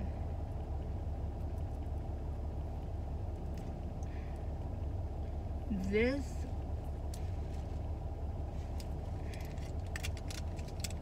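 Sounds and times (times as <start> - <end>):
minivan engine idling: 0.0 - 11.0.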